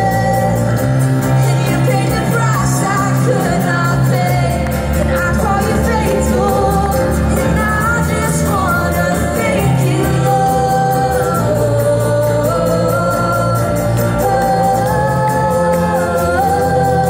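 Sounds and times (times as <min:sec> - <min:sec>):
worship band playing: 0:00.0 - 0:17.0.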